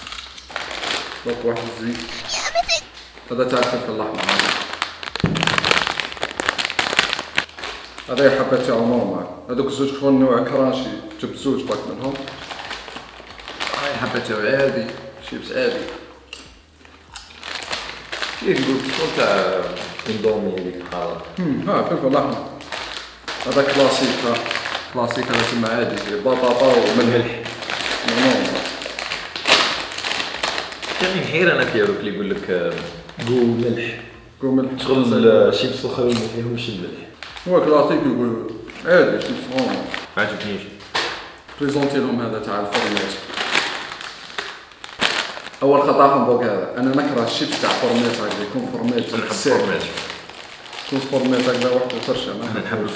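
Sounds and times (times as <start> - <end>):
chip bag crackling: 0.0 - 9.0, 11.5 - 33.6, 37.2 - 46.1, 46.8 - 52.9.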